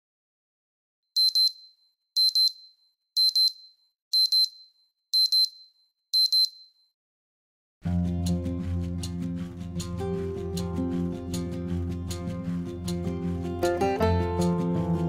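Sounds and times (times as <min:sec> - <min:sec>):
smartphone alarm double beep: 0:01.2 - 0:06.9
music: 0:07.8 - 0:15.0.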